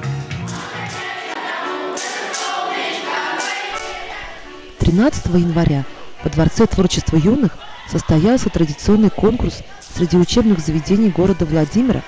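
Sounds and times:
choir singing in unison: 0:00.4 - 0:12.0.

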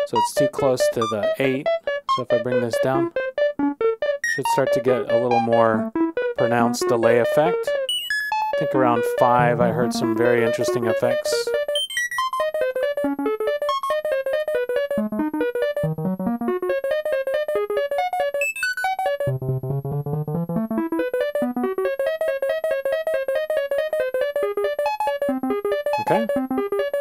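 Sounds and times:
synthesizer notes with delay: 0:00.0 - 0:27.0.

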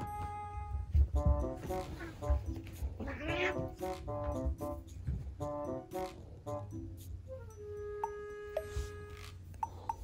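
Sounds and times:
background music: 0:00.0 - 0:10.0
cat yowling: 0:03.0 - 0:03.8.

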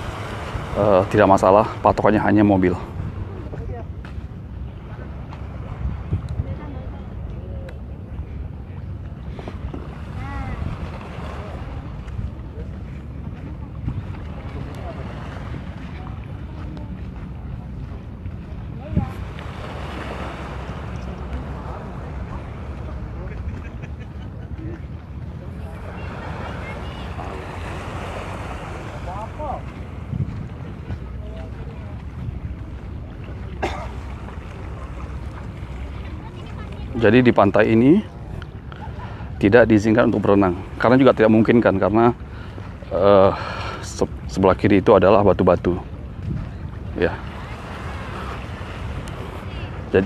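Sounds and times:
wind rumbling on microphone: 0:00.0 - 0:43.0, 0:43.8 - 0:50.0
distant crowd murmur: 0:00.0 - 0:50.0
faint chatter of people: 0:02.8 - 0:44.3.

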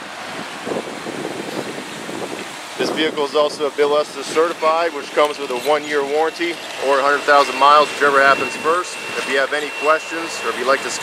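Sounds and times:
wind on microphone: 0:00.0 - 0:04.6.

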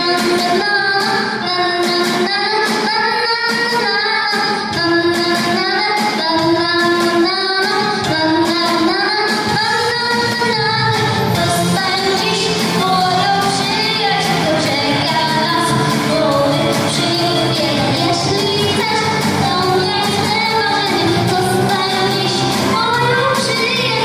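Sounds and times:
girl singing into a microphone: 0:00.0 - 0:24.0
instrumental accompaniment with beat: 0:00.0 - 0:24.0.

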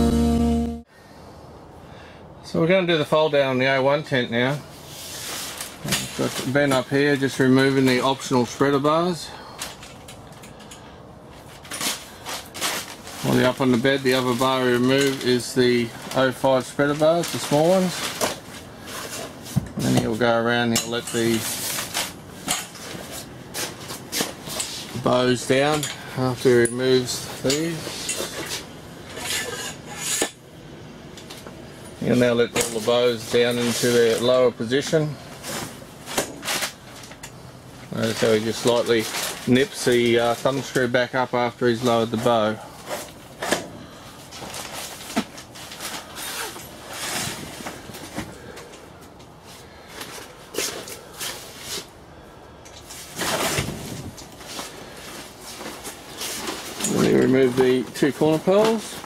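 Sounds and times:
canvas tent walls rustling: 0:02.4 - 0:59.0
metal poles scraping: 0:20.7 - 0:30.4.

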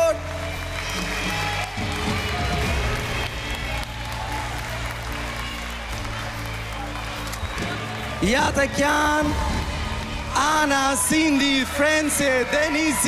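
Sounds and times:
applause: 0:00.0 - 0:13.0.

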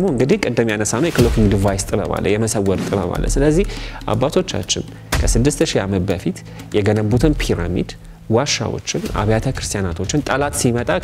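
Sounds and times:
man talking: 0:00.0 - 0:11.0
deep low thud: 0:01.2 - 0:02.2, 0:05.1 - 0:05.6.

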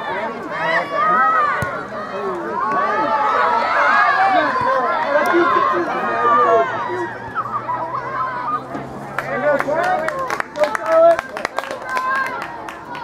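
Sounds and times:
crowd shouting: 0:00.0 - 0:13.0.

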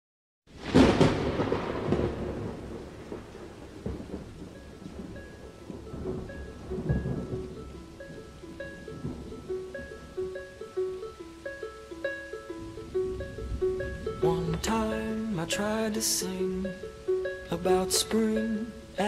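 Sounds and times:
thunderclap: 0:00.5 - 0:10.0
thunder rumbles: 0:00.5 - 0:10.4
steady rain: 0:00.5 - 0:19.0
song melody notes: 0:04.1 - 0:19.0.

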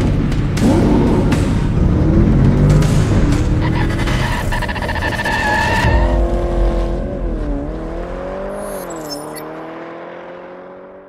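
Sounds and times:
car engine revving: 0:00.0 - 0:11.0
car tyres squealing: 0:03.5 - 0:07.4.

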